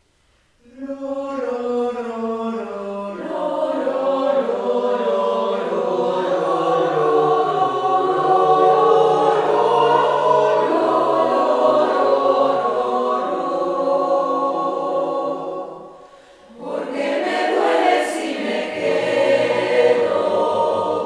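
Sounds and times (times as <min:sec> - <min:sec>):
mixed choir singing a cappella: 0:00.6 - 0:21.0.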